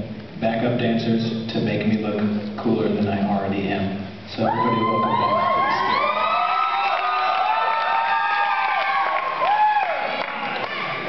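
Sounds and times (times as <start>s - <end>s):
audience cheering and screaming: 4.4s - 11.0s.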